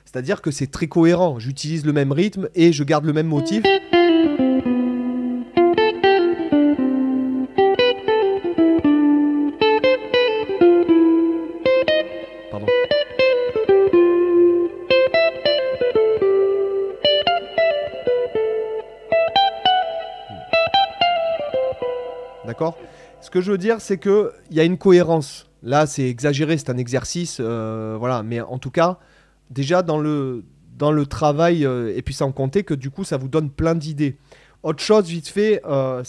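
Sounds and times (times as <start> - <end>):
electric guitar melodic motif: 3.4 - 24.0.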